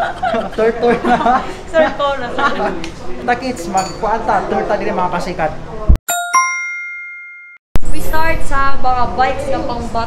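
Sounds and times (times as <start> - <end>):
bright metallic chime dings: 6.1 - 7.6.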